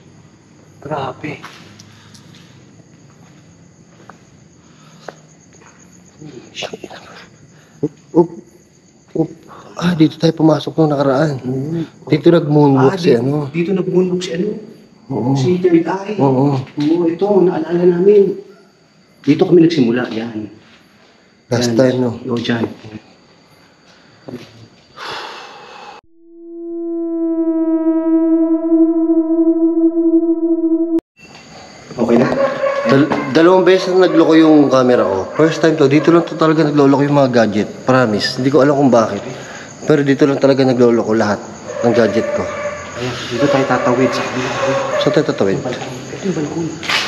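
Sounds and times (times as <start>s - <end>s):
insects trilling: 0.0s - 26.0s, 31.2s - 47.0s
steady electronic tone: 26.0s - 31.1s.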